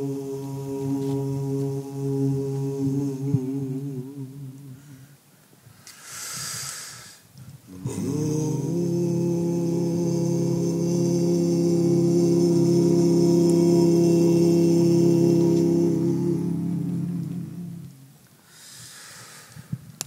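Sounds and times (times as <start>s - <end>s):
men's group humming chord: 0.0s - 5.0s, 7.7s - 18.2s
breathy hiss: 4.7s - 8.3s, 18.4s - 19.7s.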